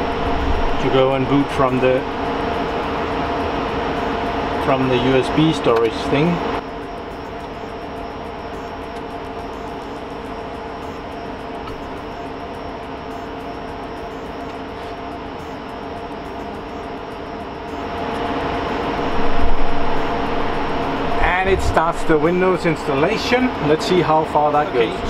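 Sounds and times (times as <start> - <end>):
server cooling fans whining: 0.0 - 25.0.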